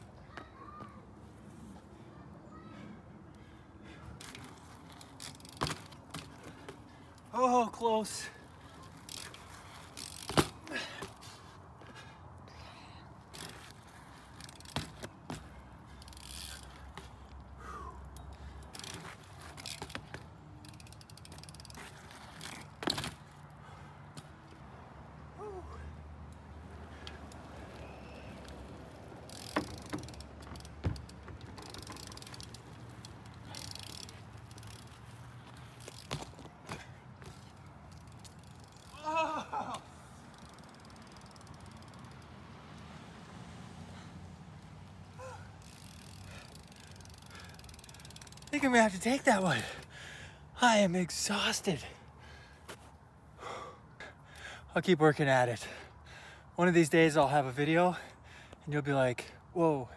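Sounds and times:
bike tyres rolling on asphalt: 0.0 - 59.9.

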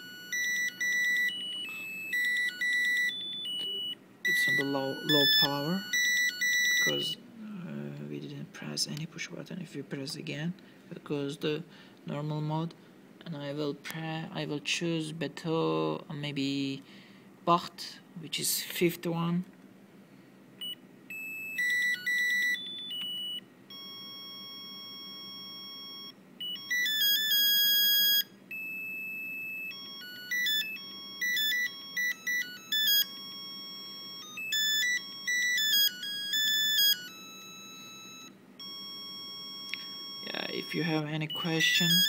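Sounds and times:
buzzer beeping a melody: 0.0 - 7.2, 20.6 - 42.0.

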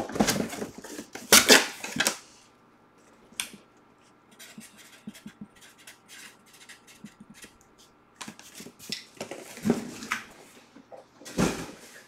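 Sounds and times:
objects rustling and clattering: 0.0 - 2.2, 8.2 - 12.0.

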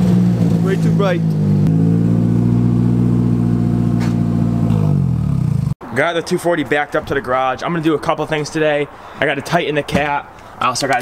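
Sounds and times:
car engine idling and shutting off: 0.0 - 5.8.

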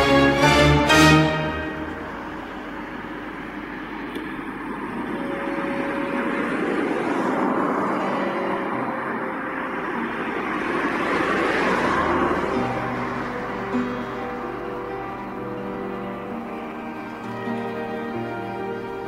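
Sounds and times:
faint music: 0.0 - 19.0
road traffic passing: 0.0 - 19.0.

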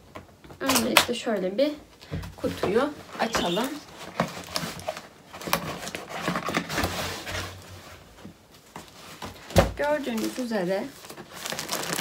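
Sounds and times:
cardboard scraping and rustling: 2.4 - 12.0.

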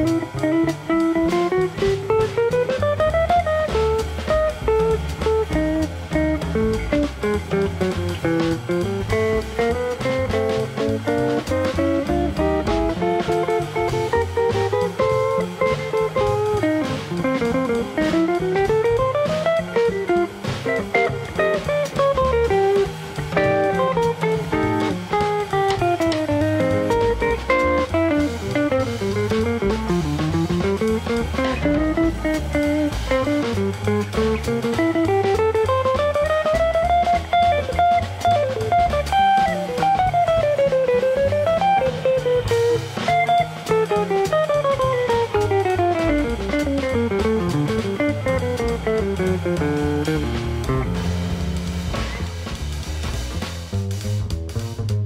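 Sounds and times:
bass: 0.0 - 55.0
drum kit: 0.0 - 55.0
jazz electric guitar solo: 0.0 - 55.0.

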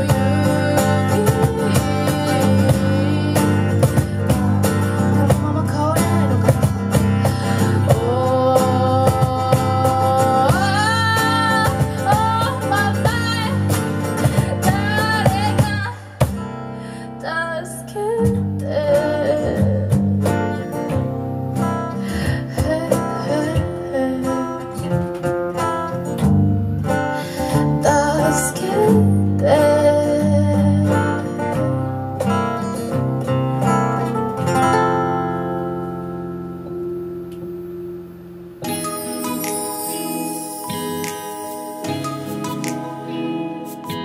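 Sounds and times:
electric bass: 0.0 - 16.4, 25.8 - 38.6
cajon percussion: 0.0 - 16.6, 18.2 - 35.1, 38.6 - 44.0
woman singing: 0.0 - 21.1, 21.8 - 26.0, 27.2 - 31.9
acoustic guitar: 0.0 - 44.0.

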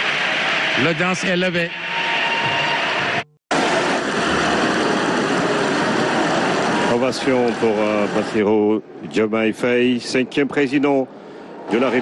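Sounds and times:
large audience applauding: 0.0 - 1.5.

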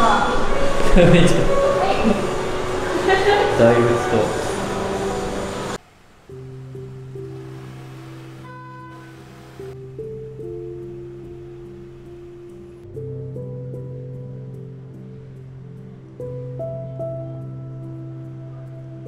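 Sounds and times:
calm music with held chords: 0.0 - 19.0.

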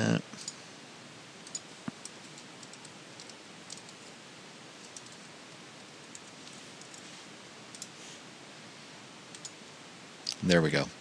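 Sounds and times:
steady background hiss: 0.0 - 11.0
keyboard and mouse clicks: 1.4 - 4.0, 4.8 - 5.3, 6.0 - 7.0, 7.7 - 8.0, 9.3 - 9.6.

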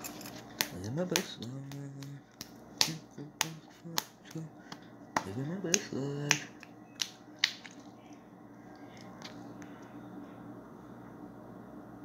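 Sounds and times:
person making vocal sounds: 0.7 - 2.2, 2.8 - 6.6.

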